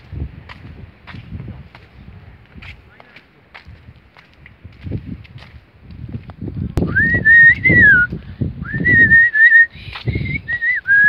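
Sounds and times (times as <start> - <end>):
footsteps on concrete steps: 0.0 - 8.3, 9.2 - 11.0
person whistling a tune: 6.8 - 11.0.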